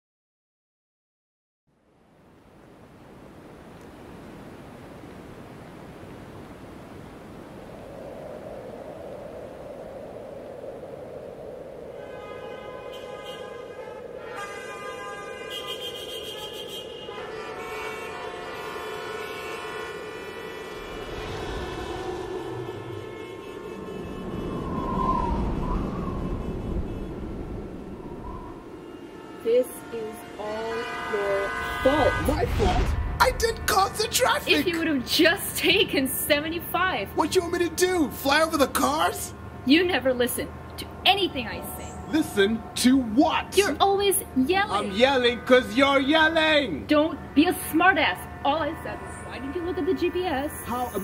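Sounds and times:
traffic drone: 0:01.8 - 0:51.0
car horns honking: 0:12.0 - 0:25.0, 0:26.2 - 0:28.0, 0:28.6 - 0:36.0, 0:36.8 - 0:51.0
deep engine rumble: 0:20.6 - 0:28.8.

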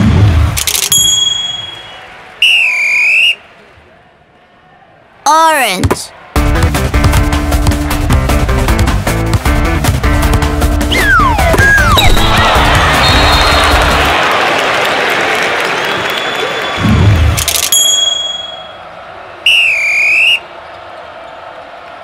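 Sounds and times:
crowd cheering and applauding: 0:05.3 - 0:08.5, 0:10.9 - 0:22.0
background music: 0:06.3 - 0:14.2.

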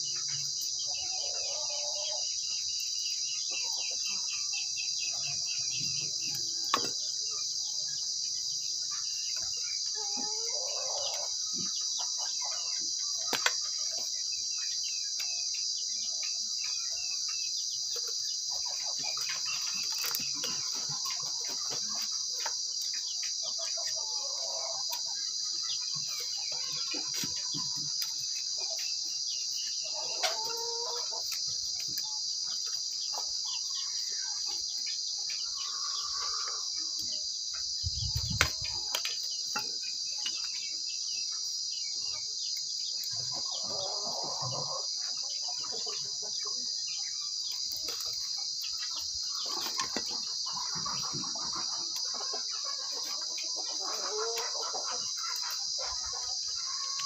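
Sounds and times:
high insect drone: 0:00.0 - 0:57.0.

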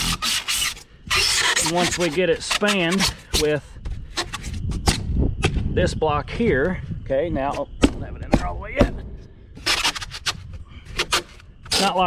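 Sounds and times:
man speaking: 0:05.8 - 0:09.0.

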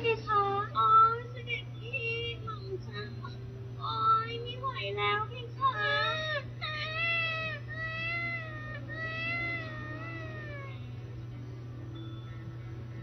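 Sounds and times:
newborn baby crying: 0:05.7 - 0:11.0.

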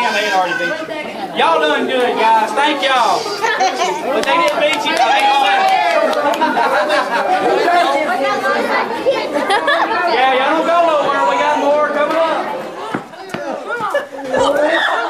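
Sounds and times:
boys and men talking: 0:00.0 - 0:15.0.

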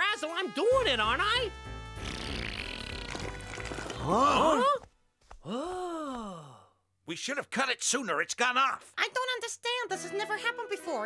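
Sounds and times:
voice groaning ohh in dismay: 0:03.9 - 0:06.6.

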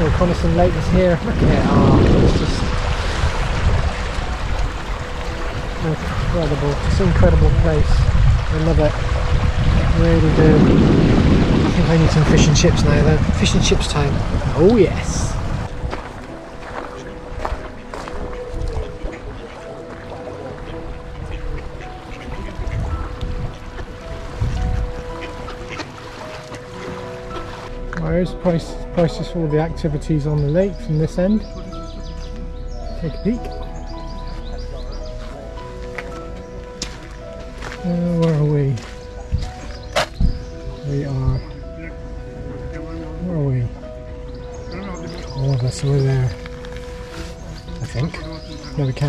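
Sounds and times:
low rumble: 0:00.0 - 0:16.0
waves lapping on pebbles: 0:00.0 - 0:27.7
wind buffeting microphone: 0:00.0 - 0:27.8, 0:38.6 - 0:49.0
background music with held notes: 0:00.0 - 0:49.0
ducks quacking: 0:17.0 - 0:27.7, 0:38.8 - 0:43.8, 0:44.4 - 0:49.0.

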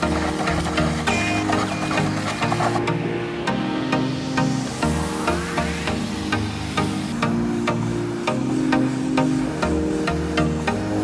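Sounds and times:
electronic music with steady beat: 0:00.0 - 0:11.0.

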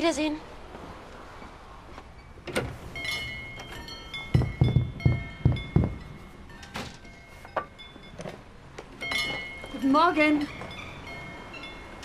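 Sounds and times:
door opening: 0:02.4 - 0:06.0
small doorbell ringing: 0:03.0 - 0:08.4, 0:09.0 - 0:12.0
dull thumps: 0:04.3 - 0:06.2.

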